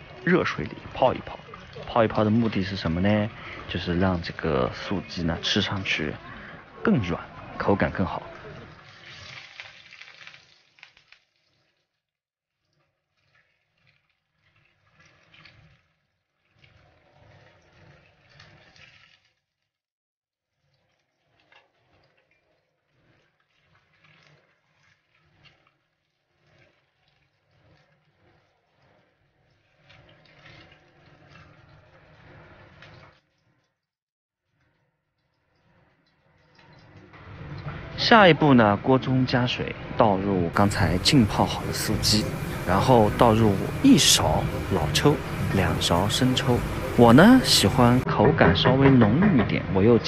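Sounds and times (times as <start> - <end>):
food sizzling in oil: 8.6 - 11.9, 40.6 - 48.0.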